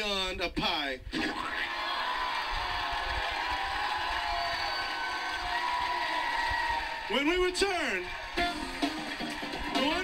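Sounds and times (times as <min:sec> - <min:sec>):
studio audience cheering: 0:01.3 - 0:10.0.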